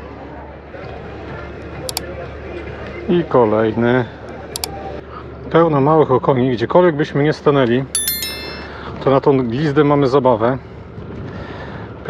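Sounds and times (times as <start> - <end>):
sharp high clicks: 8.0 - 8.8.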